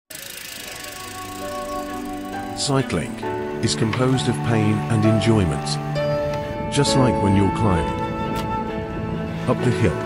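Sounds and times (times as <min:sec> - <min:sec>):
bicycle freewheel ticking: 0:00.1 - 0:02.6
soft background music: 0:00.3 - 0:10.0.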